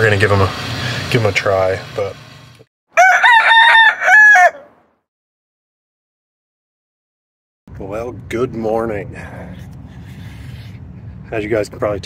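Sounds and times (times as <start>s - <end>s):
rooster crowing: 2.9s - 4.8s.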